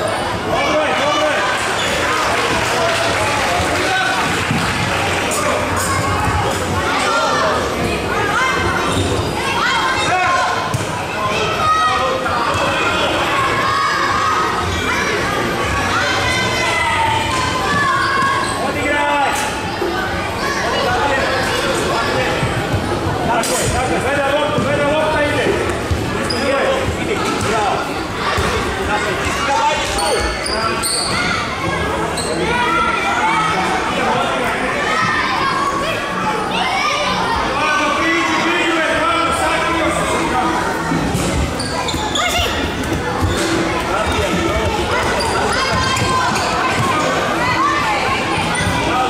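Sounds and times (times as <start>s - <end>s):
children shouting: 0.0s - 18.7s, 28.1s - 49.0s
shoes squeaking on wooden floor: 41.2s - 47.0s.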